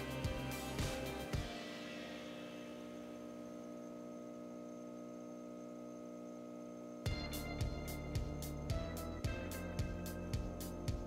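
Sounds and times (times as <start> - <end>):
steady hum of held tones: 0.0 - 11.0.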